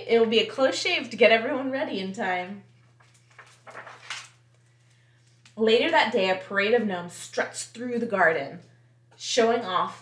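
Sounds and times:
book page turning: 2.8s - 5.6s.

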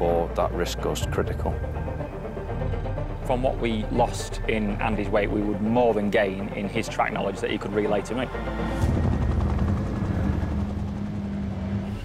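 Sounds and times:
engine drone: 7.4s - 12.0s.

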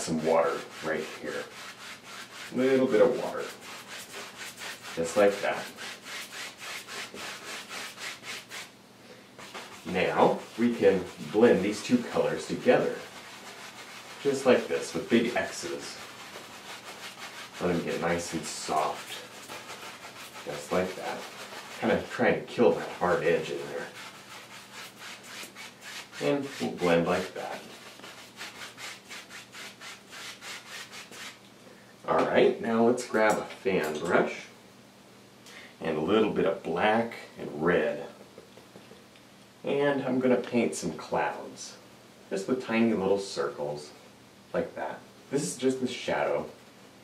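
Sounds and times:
brush scrubbing paint on canvas: 0.0s - 8.7s, 9.4s - 31.4s.

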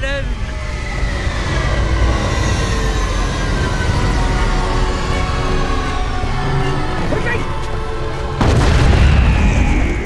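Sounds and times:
dramatic music with high held note: 0.0s - 10.0s.

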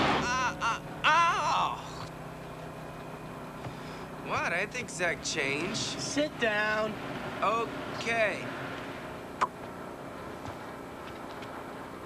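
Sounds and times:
bus running noise: 0.0s - 12.0s.

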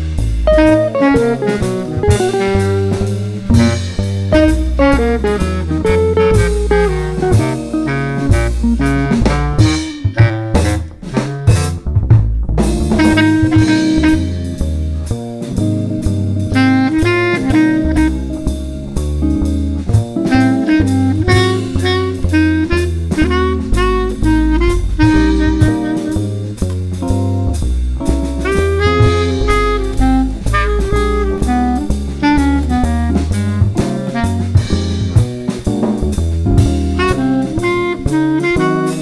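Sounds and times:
drum hits: 0.0s - 39.0s
small jazz combo playing: 0.0s - 39.0s
walking double bass: 0.0s - 39.0s.

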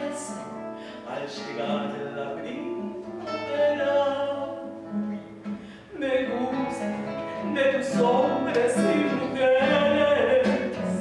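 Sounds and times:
classical guitar plucked notes: 0.0s - 11.0s.

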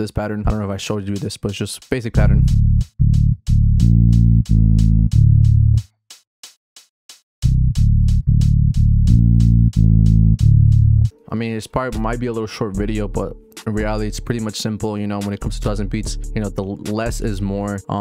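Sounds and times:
low synth bass notes: 2.2s - 5.8s, 7.4s - 11.2s, 12.0s - 14.5s.

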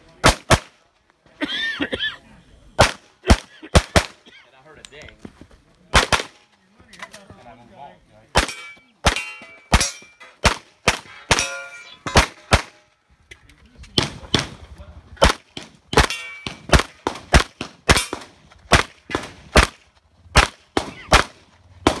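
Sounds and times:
pistol shots: 2.8s - 4.2s, 5.9s - 6.4s, 8.3s - 12.8s, 15.2s - 22.0s
steel targets ringing: 8.4s - 10.4s, 11.0s - 12.9s, 16.0s - 16.7s.

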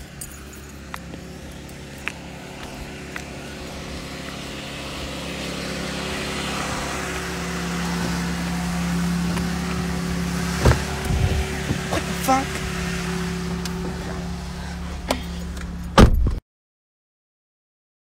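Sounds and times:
car engine humming: 0.0s - 16.4s.

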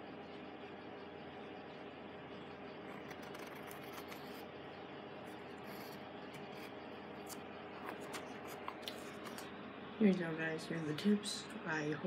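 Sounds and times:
pen scratching on paper: 2.8s - 4.5s, 5.3s - 6.8s.

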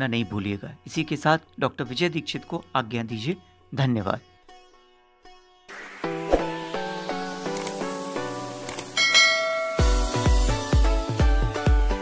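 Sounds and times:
bell-like chime: 9.0s - 10.4s
electronic music with heavy bass beat: 9.8s - 11.8s.

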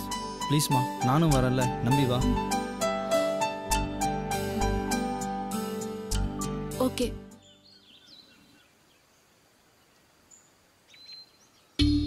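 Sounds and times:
background music: 0.0s - 7.5s, 11.8s - 12.0s
high bird chirps: 7.4s - 9.2s, 9.8s - 12.0s.

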